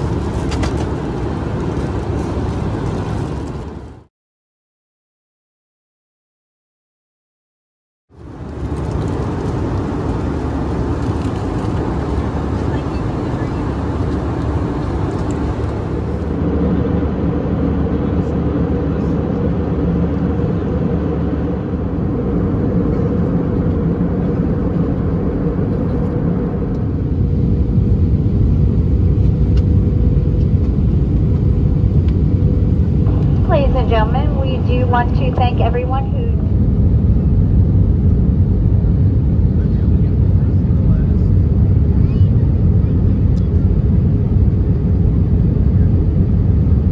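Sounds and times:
jet engines roaring in cabin: 0:00.0 - 0:04.1, 0:08.1 - 0:46.9
faint steady hum: 0:32.4 - 0:36.6.

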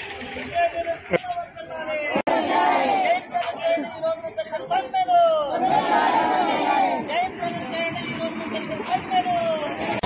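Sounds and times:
road traffic noise: 0:00.0 - 0:10.0
crowd of women chanting: 0:02.1 - 0:03.2, 0:05.5 - 0:07.1.

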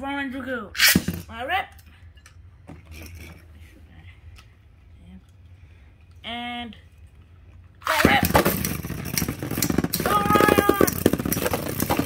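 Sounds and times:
spinning top whirring: 0:07.9 - 0:12.0.

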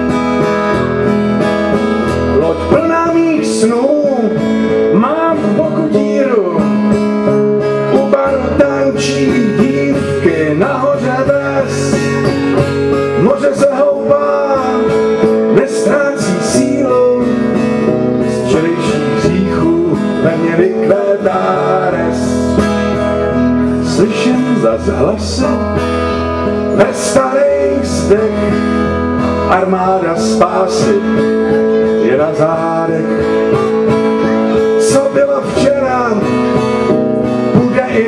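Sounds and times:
acoustic guitar strummed: 0:00.0 - 0:38.0.

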